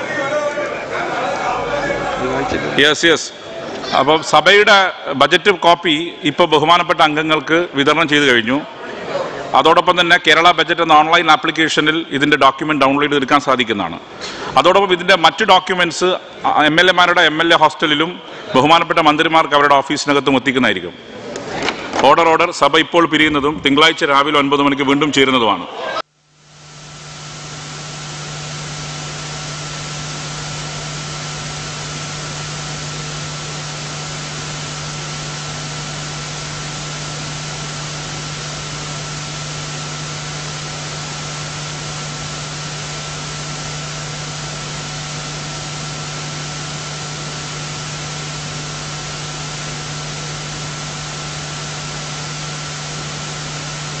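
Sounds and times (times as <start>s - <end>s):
low steady hum: 23.0s - 54.0s
electronic hiss: 26.3s - 54.0s.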